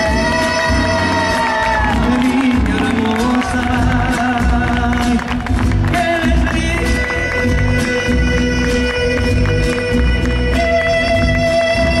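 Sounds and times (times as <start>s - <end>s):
live band music: 0.0s - 12.0s
man singing long notes: 0.0s - 12.0s.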